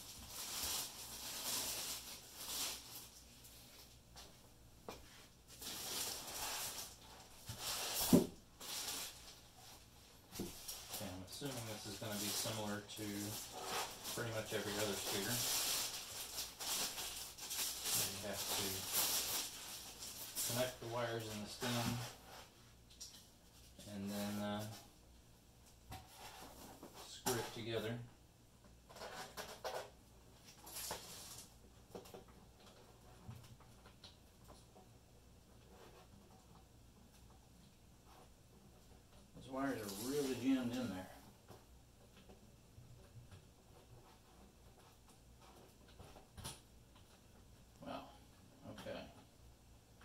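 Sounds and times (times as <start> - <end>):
packaging rustling and scraping: 0.0 - 3.9, 5.5 - 22.6, 28.9 - 31.5, 39.4 - 41.1.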